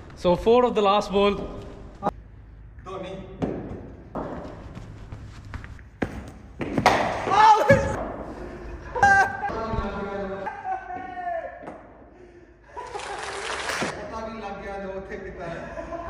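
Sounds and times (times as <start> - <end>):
cricket bat hitting ball: 6.6 - 8.1
men shouting excitedly: 9.0 - 11.7.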